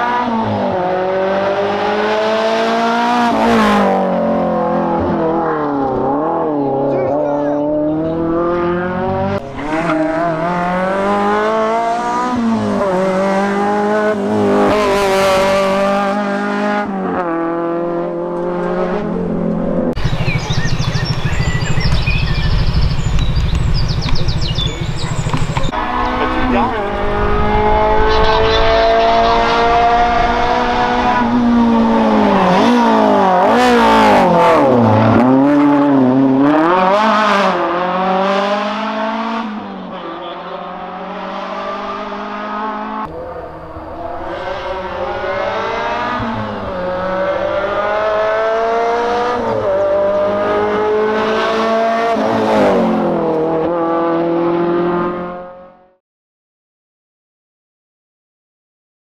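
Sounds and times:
rally car engines at high revs: 0.0s - 56.0s.

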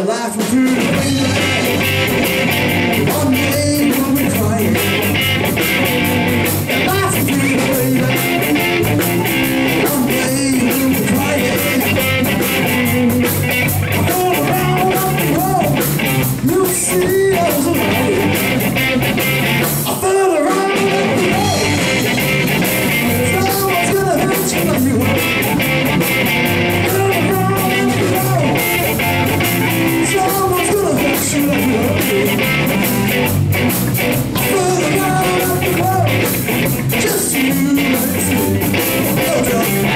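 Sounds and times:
drum kit: 0.0s - 39.9s
electric guitar: 0.0s - 39.9s
electric bass guitar: 0.4s - 39.9s.

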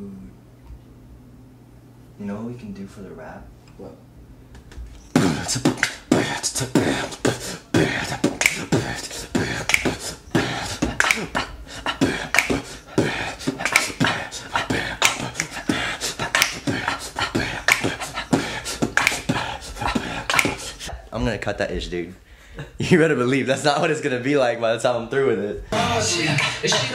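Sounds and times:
man beatboxing: 5.1s - 21.0s, 25.7s - 26.9s.

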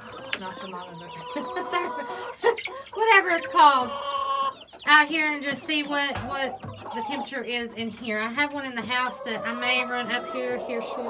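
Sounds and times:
young chickens clucking: 0.0s - 11.0s.

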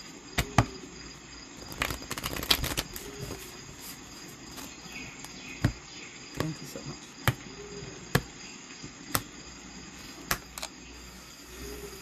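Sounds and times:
faint high-pitched background tone: 2.7s - 12.0s
faint chirps: 2.9s - 12.0s.

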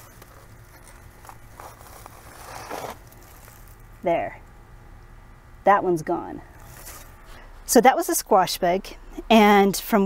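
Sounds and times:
scraping on fabric and mulch: 0.0s - 4.0s, 6.6s - 7.5s.

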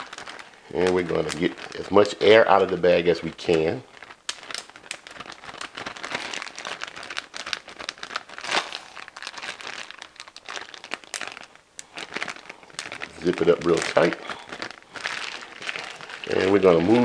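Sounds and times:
plastic bag crinkling: 0.0s - 17.0s.

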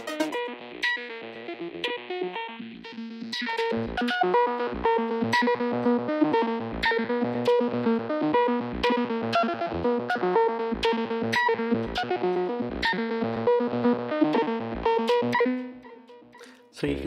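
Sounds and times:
vocoder synth chords: 0.0s - 17.0s.

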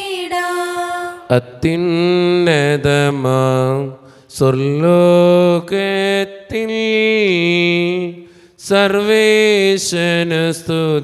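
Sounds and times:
man chanting a hymn: 1.3s - 11.0s.

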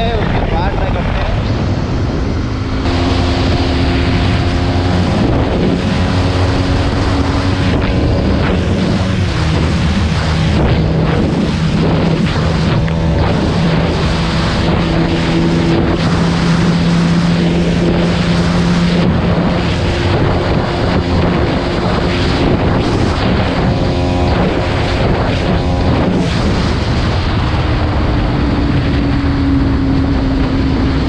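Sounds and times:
wind rush on microphone: 0.0s - 31.0s
motorcycle engine at high revs: 0.7s - 31.0s.

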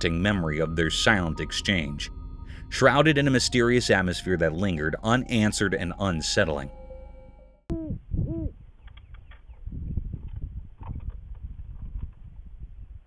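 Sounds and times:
low rumbling noise: 0.0s - 7.7s.

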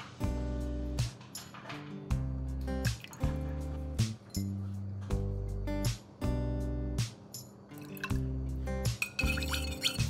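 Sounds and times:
drips into a glass bowl: 7.7s - 8.2s, 9.0s - 10.0s
liquid trickling into a spoon: 7.7s - 8.2s, 9.0s - 10.0s.

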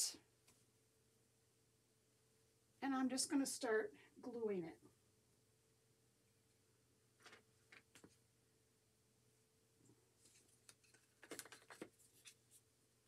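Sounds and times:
soft clicks and rustles: 7.2s - 8.2s, 9.8s - 12.7s.

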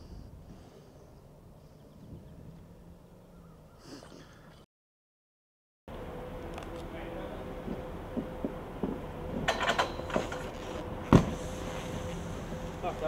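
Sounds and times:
faint hum: 5.9s - 13.0s
snowboard clattering on metal rail: 9.4s - 11.3s.

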